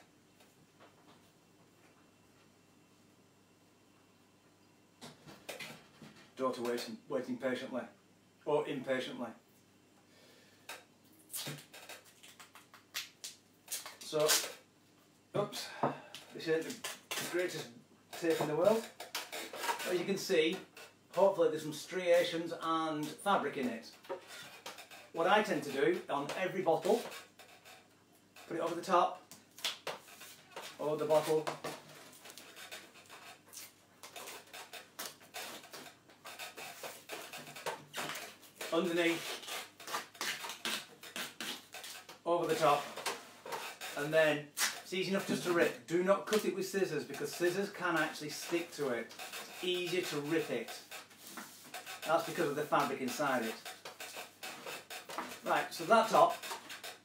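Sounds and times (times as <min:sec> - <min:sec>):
duct tape ripping off roll: 0:11.3 - 0:14.6, 0:29.4 - 0:30.8, 0:32.2 - 0:45.4.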